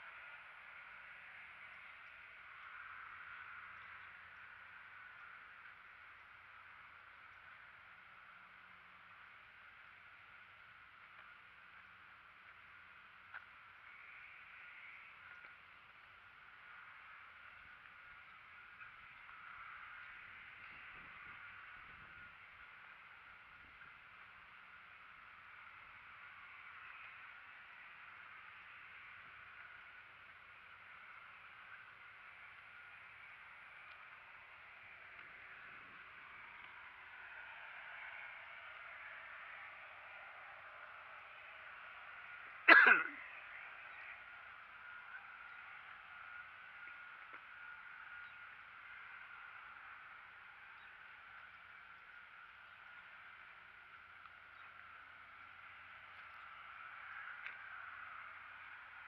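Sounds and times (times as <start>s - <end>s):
soft outdoor hiss: 0.0s - 59.0s.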